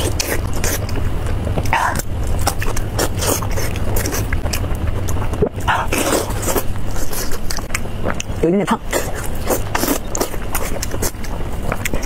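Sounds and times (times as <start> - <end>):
close chewing and mouth sounds: 0.0 - 12.0
steady low hum: 0.0 - 12.0.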